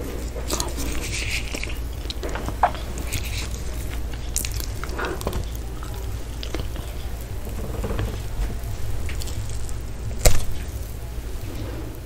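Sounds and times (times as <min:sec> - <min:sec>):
chewing with wet mouth clicks: 0:00.0 - 0:10.8
steady low hum: 0:00.0 - 0:12.0.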